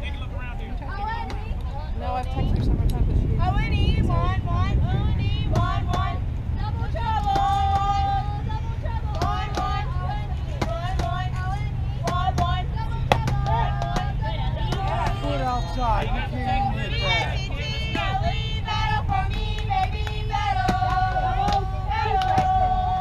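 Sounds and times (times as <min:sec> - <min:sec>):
steady low rumble: 0:00.0 - 0:23.0
girls calling and chanting: 0:00.7 - 0:23.0.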